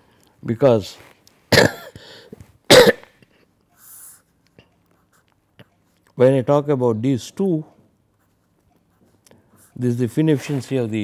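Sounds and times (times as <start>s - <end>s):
person coughing: 1.5s - 3.2s.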